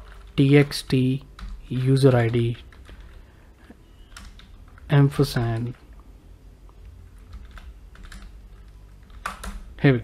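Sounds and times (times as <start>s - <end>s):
low steady hum: 0.0s - 10.0s
computer keyboard typing: 0.1s - 3.3s, 4.0s - 5.8s, 7.0s - 9.8s.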